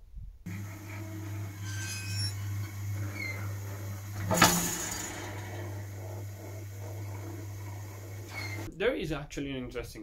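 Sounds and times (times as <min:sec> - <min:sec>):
boiler drive motor humming: 0:00.4 - 0:08.7.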